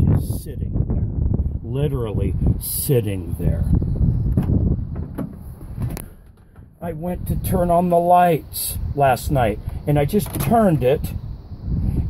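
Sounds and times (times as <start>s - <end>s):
man's voice: 0.0s - 0.8s, 1.6s - 3.8s, 6.8s - 11.2s
low rumble: 0.0s - 2.6s.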